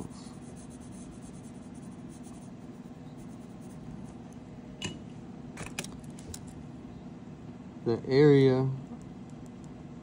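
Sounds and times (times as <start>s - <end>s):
pencil scratching on paper: 0.0s - 4.0s
low background hum: 0.0s - 10.0s.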